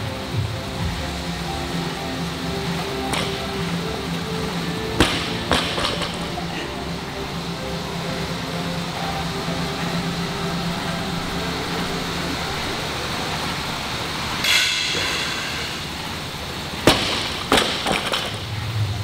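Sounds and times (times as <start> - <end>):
exercise bike fan whooshing: 0.0 - 19.0
barbell dropped on gym floor: 3.1 - 3.5, 5.0 - 6.4, 16.8 - 18.5.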